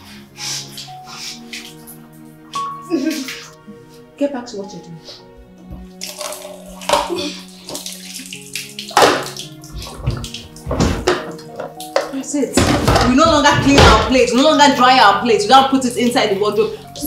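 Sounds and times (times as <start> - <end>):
background music: 0.0 - 17.0
water splashing in sink: 0.6 - 3.5, 5.8 - 17.0
woman's voice: 4.2 - 5.1, 12.1 - 17.0.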